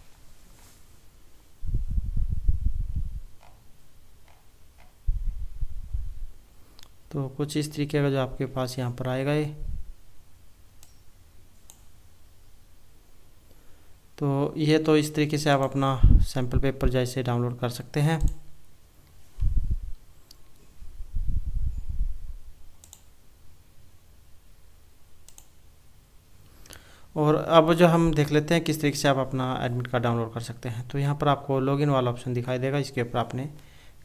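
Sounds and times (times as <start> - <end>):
faint low room hum: 0.0 - 34.0
computer mouse click: 10.8 - 11.0, 11.6 - 11.9, 22.8 - 23.1, 25.2 - 25.6.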